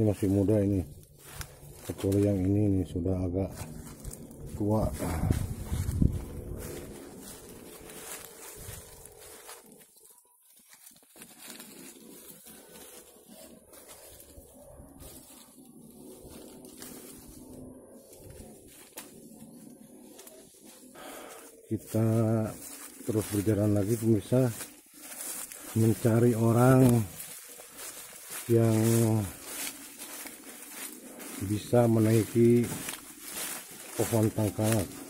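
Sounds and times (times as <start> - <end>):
man's voice: 0.0 - 0.9, 1.8 - 3.6, 4.5 - 5.6, 21.7 - 24.7, 25.7 - 27.2, 28.4 - 29.4, 31.4 - 32.9, 33.9 - 35.0
footsteps in dry leaves: 0.0 - 35.0.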